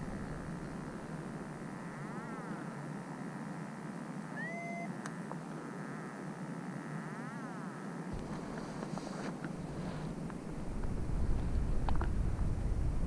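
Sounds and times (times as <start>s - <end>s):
whistle-like tone: 4.4s - 4.9s
wind rushing on microphone: 8.1s - 13.0s.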